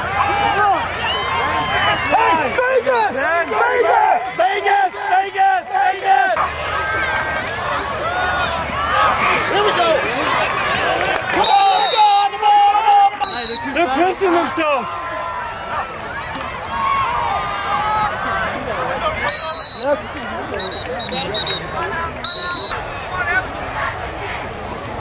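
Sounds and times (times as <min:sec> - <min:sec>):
crowd shouting and cheering: 0:00.0 - 0:25.0
referee's whistle blasts: 0:13.2 - 0:13.8, 0:19.2 - 0:20.0, 0:20.6 - 0:22.8.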